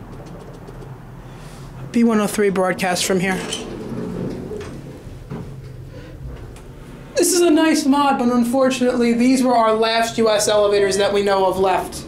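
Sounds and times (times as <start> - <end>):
elevator pump motor humming: 2.1 - 7.3.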